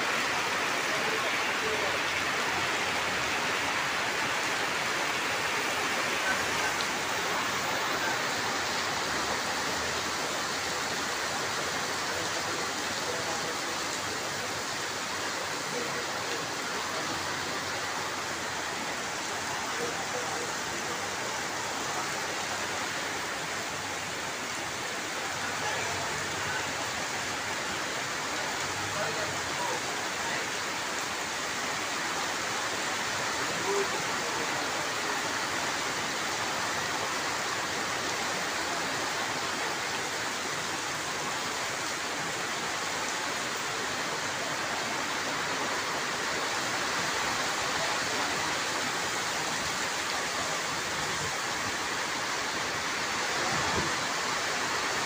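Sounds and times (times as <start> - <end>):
rain on pavement and tarpaulin: 0.0 - 55.0
water streaming off canopy: 0.0 - 55.0.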